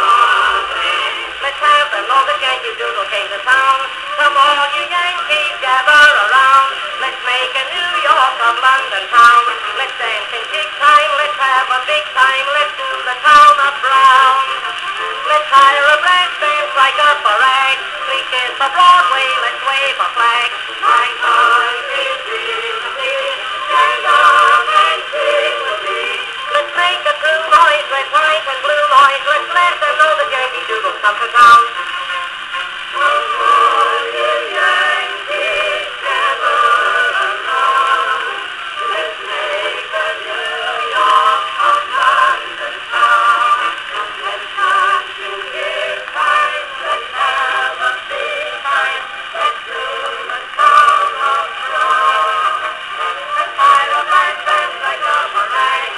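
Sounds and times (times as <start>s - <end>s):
ragtime band on phonograph: 0.0s - 55.9s
record surface crackle: 0.0s - 55.9s.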